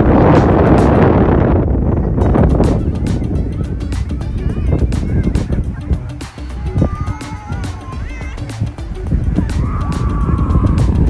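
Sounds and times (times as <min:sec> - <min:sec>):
gulls calling: 0:00.0 - 0:11.0
wind rumble on microphone: 0:00.0 - 0:11.0.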